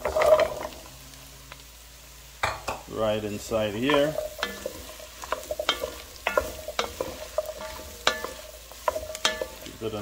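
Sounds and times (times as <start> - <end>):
vegetables sizzling in a pot: 0.0 - 10.0
pumpkin cubes clattering into pot: 3.6 - 10.0.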